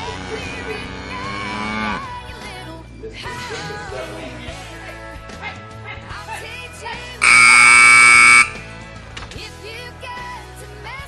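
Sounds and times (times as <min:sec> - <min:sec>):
background music: 0:00.0 - 0:11.0
timer buzzer: 0:07.2 - 0:08.6.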